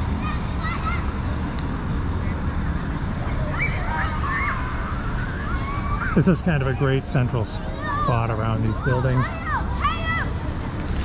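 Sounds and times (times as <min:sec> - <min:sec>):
low city rumble: 0:00.0 - 0:11.0.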